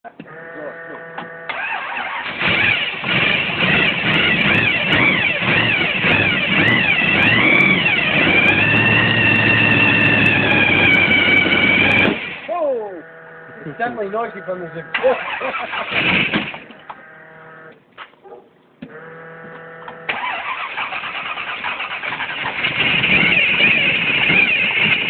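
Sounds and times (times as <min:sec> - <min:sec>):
hot rod engine starting and revving: 0:01.0 - 0:12.5, 0:13.2 - 0:17.7, 0:18.9 - 0:25.0.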